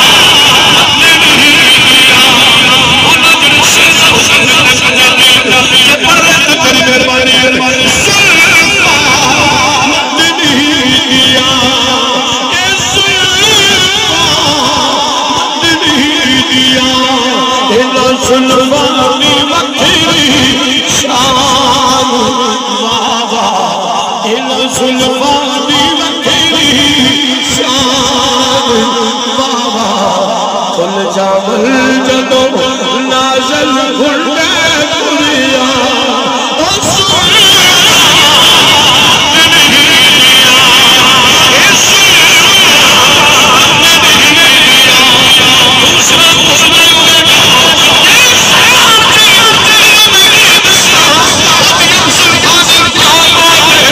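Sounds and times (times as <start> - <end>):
man singing through loudspeakers: 0.0 - 53.9.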